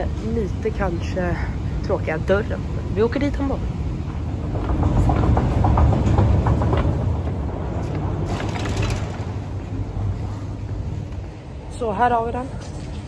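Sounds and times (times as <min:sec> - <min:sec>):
escalator rumble: 0:00.0 - 0:12.6
escalator steps clicking: 0:02.6 - 0:11.3.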